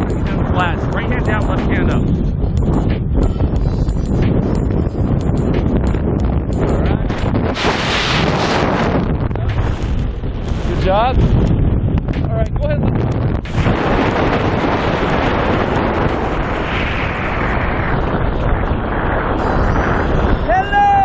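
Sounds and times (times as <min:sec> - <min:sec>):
freefall wind buffeting microphone: 0:00.0 - 0:21.0.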